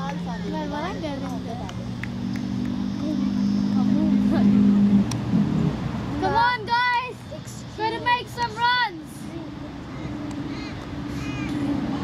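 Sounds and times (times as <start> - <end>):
children chattering: 0.0 - 2.1, 2.7 - 5.1, 6.0 - 12.0
low motor hum: 0.0 - 12.0.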